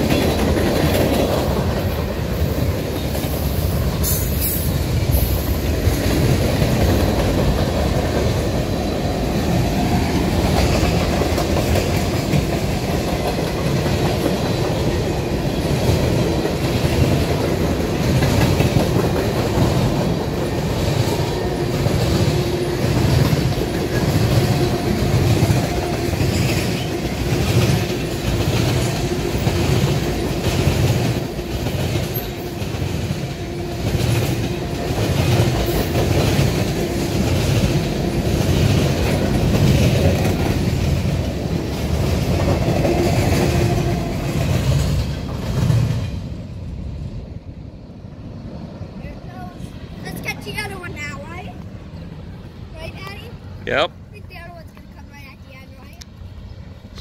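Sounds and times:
train wheels clacking over rail joints: 0.0s - 46.3s
freight train rumble: 0.0s - 57.0s.

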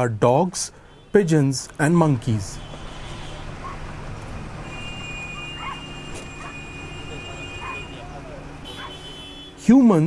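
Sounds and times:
dog-like yelps: 3.6s - 4.0s, 5.3s - 6.7s, 7.6s - 8.0s, 8.8s - 9.0s.

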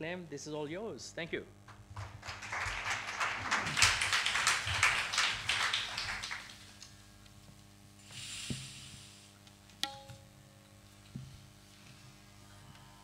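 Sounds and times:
audience applauding: 1.7s - 6.8s.

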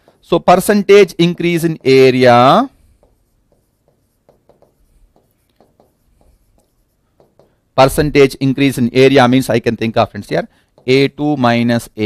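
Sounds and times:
stylus tapping and scratching screen: 0.0s - 8.4s, 10.0s - 12.0s.

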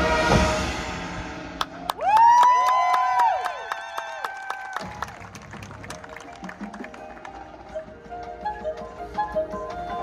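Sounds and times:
marching band sustained chords: 0.0s - 1.9s.

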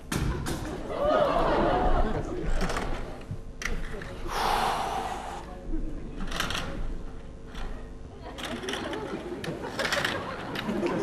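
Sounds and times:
person gasping: 4.3s - 5.5s.

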